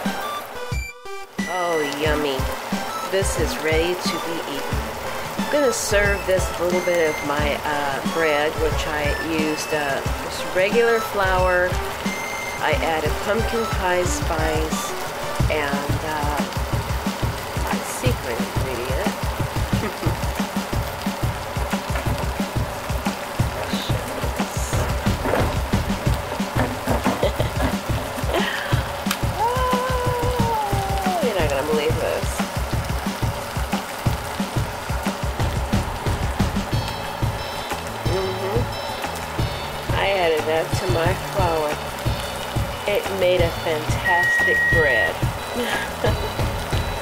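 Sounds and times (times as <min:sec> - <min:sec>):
background music: 0:00.0 - 0:47.0
sauce bubbling in a pan: 0:00.6 - 0:47.0.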